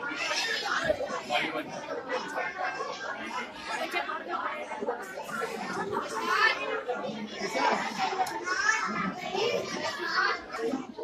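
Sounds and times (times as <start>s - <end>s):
children talking: 0.0s - 11.0s
overlapping voices talking: 0.0s - 11.0s.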